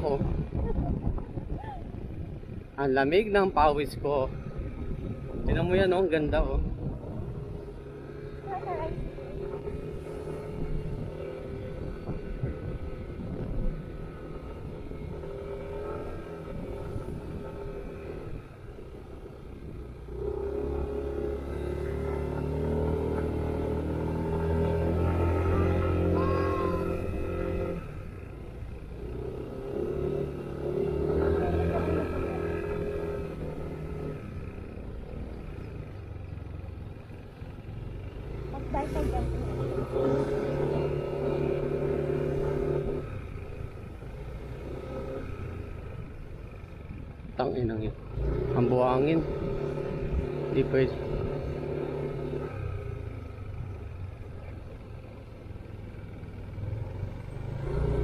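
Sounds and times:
scooter engine running: 4.4 - 58.0.

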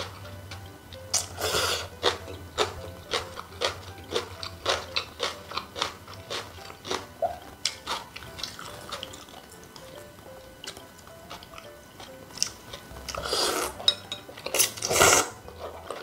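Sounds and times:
wet chewing of noodles: 0.0 - 16.0.

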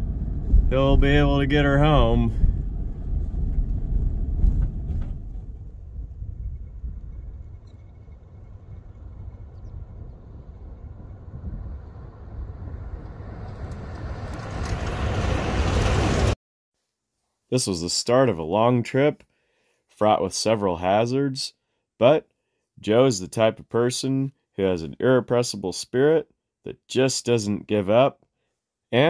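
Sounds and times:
road noise inside vehicle: 0.0 - 5.8, 8.1 - 16.4
tyres on gravel road: 0.0 - 16.4
truck engine: 7.8 - 16.4.

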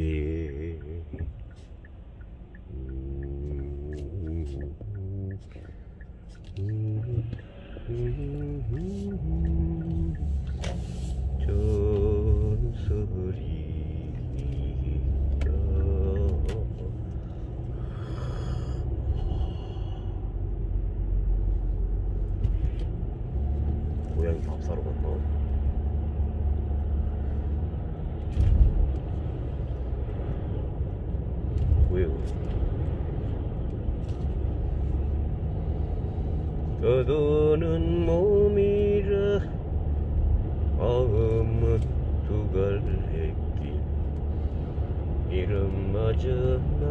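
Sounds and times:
person singing drawn-out notes: 0.0 - 1.5, 2.6 - 5.6, 6.4 - 10.6, 11.4 - 17.0
car engine and tyres rumbling: 0.0 - 46.9.

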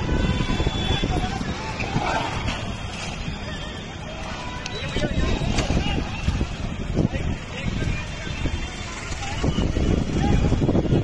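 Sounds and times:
low rumble of street noise: 0.0 - 11.0
people's voices: 0.0 - 11.0.

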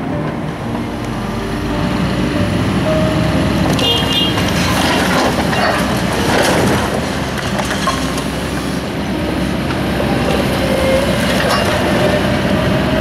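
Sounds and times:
excavator diesel engine: 0.0 - 13.0
rubble crashing: 4.4 - 8.7.

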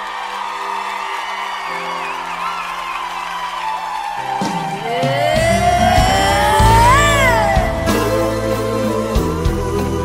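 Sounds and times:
ballad music with bass and drums: 4.4 - 10.0.

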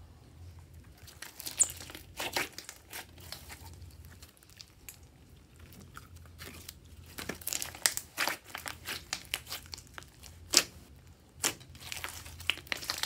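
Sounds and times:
slime crackling and popping: 1.0 - 5.1, 5.8 - 13.0.

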